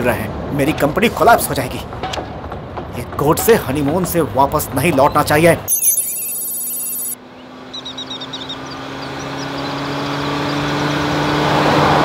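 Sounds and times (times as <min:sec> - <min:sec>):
vehicle engine and road noise: 0:00.0 - 0:05.7, 0:07.2 - 0:12.0
birds chirping: 0:05.0 - 0:11.4
high electronic ringing: 0:05.7 - 0:07.2.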